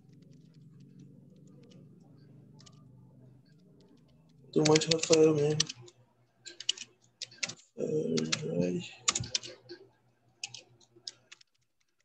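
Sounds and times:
keyboard typing: 0:00.0 - 0:12.0
person's voice: 0:04.5 - 0:05.8, 0:07.8 - 0:09.4.

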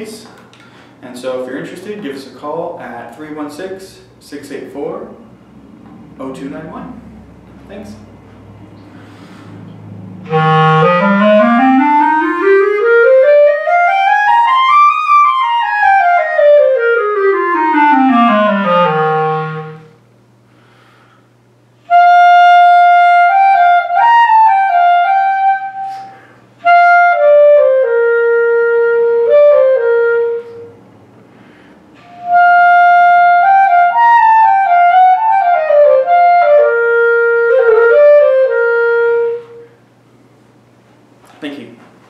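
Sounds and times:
clarinet playing: 0:08.8 - 0:20.1, 0:21.8 - 0:39.9.

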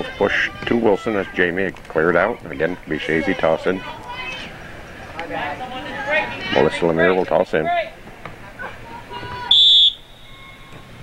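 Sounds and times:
referee's whistle blast: 0:09.5 - 0:10.8.

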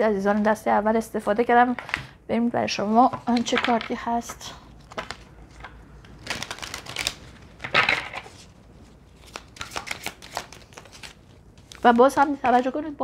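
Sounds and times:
cards shuffled by hand: 0:04.8 - 0:08.5, 0:09.1 - 0:12.7.

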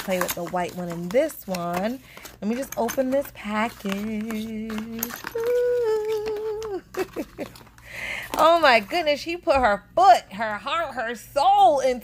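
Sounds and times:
woman laughing: 0:05.7 - 0:08.2.

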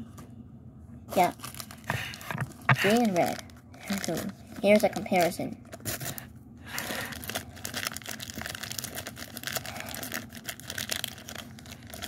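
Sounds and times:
plastic candy bag crinkling: 0:01.2 - 0:12.0.

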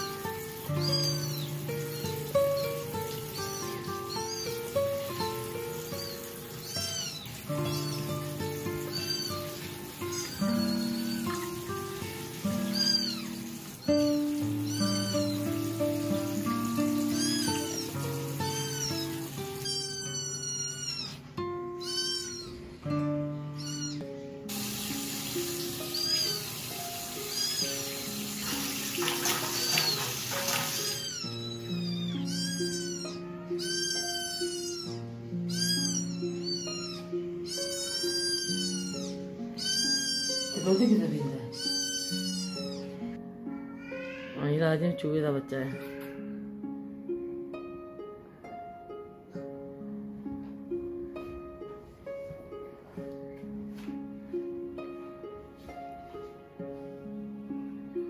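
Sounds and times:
kitten mewing: 0:14.6 - 0:15.4, 0:19.6 - 0:21.2, 0:21.8 - 0:22.7, 0:23.6 - 0:24.0, 0:30.7 - 0:43.0
background music: 0:22.6 - 0:58.0.

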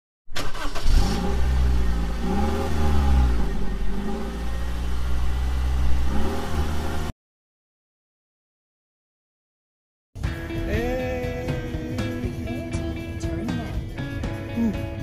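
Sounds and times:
car engine starting and revving: 0:00.3 - 0:07.1.

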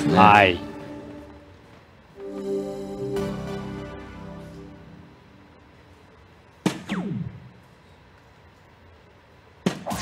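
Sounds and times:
dart hitting electronic dartboard: 0:06.6 - 0:07.5.

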